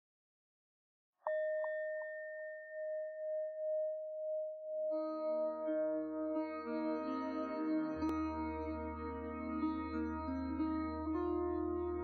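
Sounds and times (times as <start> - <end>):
singing bowl ringing: 1.3 - 5.0.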